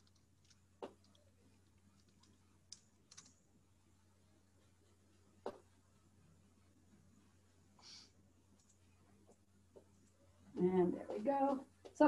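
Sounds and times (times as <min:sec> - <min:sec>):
small clicks: 0:00.0 - 0:03.4, 0:08.5 - 0:09.4
faint low hum: 0:00.0 - 0:12.0.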